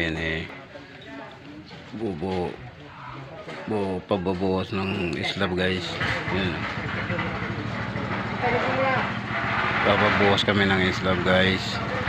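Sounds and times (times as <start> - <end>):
engine rumbling: 5.6 - 12.0.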